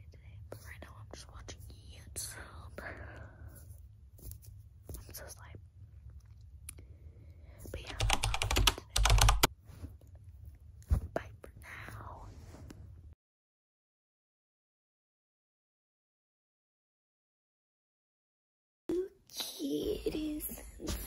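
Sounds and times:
soft whispering: 0:00.0 - 0:03.8, 0:04.9 - 0:05.7, 0:07.4 - 0:09.4, 0:10.9 - 0:12.8.

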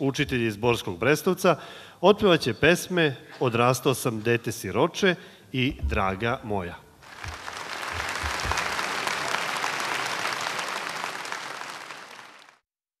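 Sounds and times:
audience applauding: 0:07.0 - 0:12.6.

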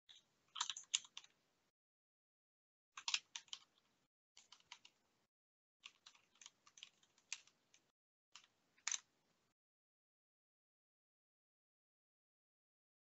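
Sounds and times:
faint computer keyboard typing: 0:00.1 - 0:01.4, 0:03.0 - 0:05.0, 0:05.8 - 0:09.1.

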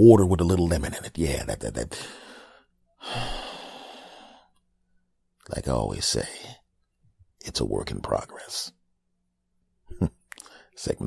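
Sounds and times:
man sighing: 0:02.0 - 0:04.4.

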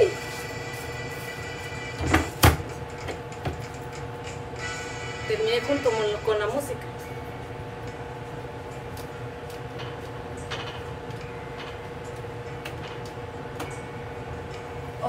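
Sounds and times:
low kitchen hum: 0:00.0 - 0:15.0.

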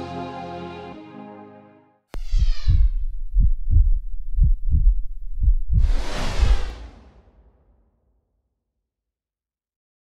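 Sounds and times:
heartbeat thumps: 0:02.2 - 0:06.7
loud rushing whoosh: 0:04.5 - 0:07.9.

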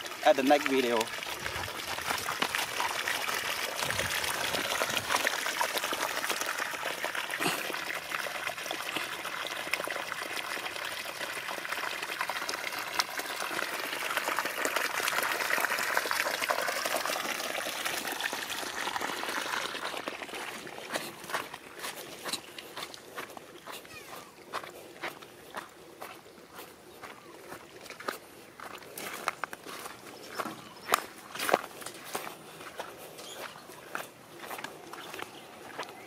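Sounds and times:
water pouring into puddle: 0:00.0 - 0:35.9.

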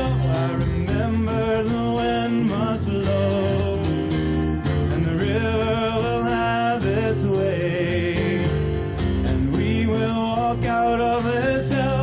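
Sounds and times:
man singing folk song: 0:00.0 - 0:12.0
strummed acoustic guitar: 0:00.0 - 0:12.0.

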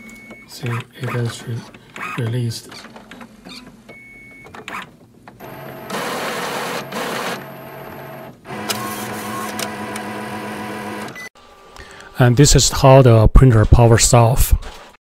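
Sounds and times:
printer motors whirring: 0:00.5 - 0:03.8, 0:04.5 - 0:11.2
printer clicks: 0:08.5 - 0:10.2.

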